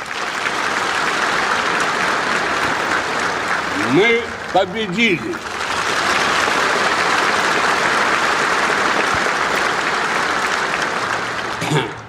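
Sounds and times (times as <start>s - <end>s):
audience applause: 0.0s - 12.0s.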